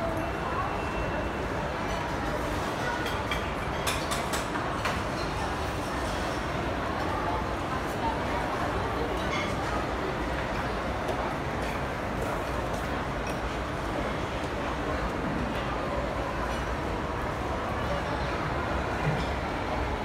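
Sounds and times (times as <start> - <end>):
indistinct chatter of diners: 0.0 - 20.0.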